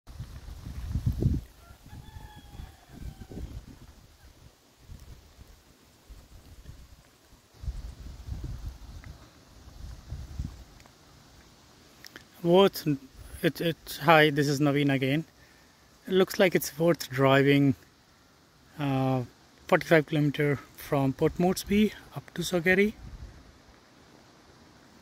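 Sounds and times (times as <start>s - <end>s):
wind buffeting microphone: 0.1s - 5.5s, 7.6s - 10.7s
distant rooster crow: 1.5s - 4.0s.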